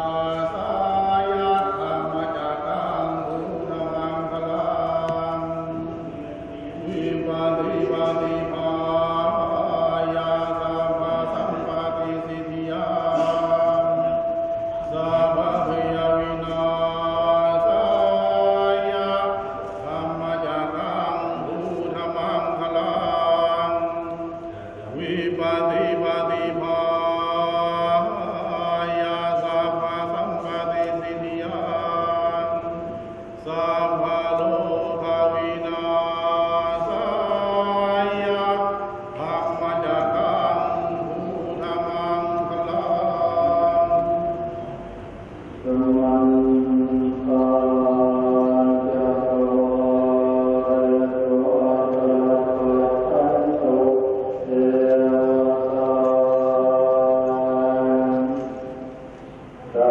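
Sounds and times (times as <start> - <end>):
voices chanting in monotone: 0.0 - 59.9.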